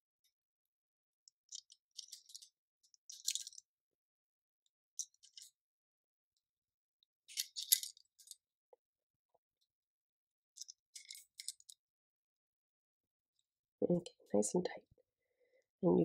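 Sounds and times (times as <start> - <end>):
light clicks and scrapes: 1.3 - 3.7, 7.3 - 8.4, 10.6 - 11.8.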